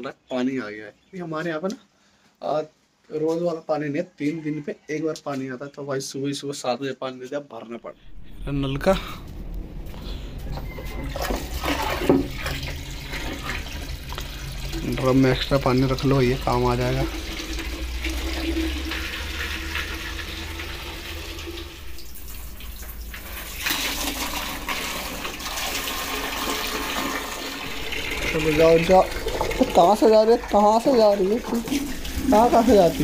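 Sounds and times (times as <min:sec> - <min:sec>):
water running into plastic drum: 0:10.6 - 0:33.0.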